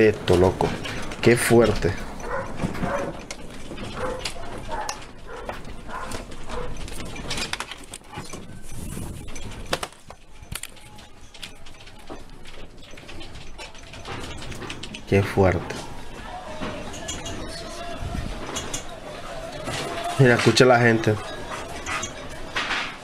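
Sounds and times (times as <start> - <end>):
objects rattling and knocking: 0.0 - 23.0.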